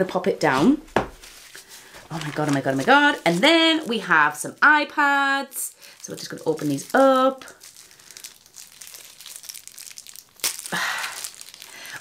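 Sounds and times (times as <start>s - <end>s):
plastic wrapping crinkling and tearing: 1.2s - 12.0s.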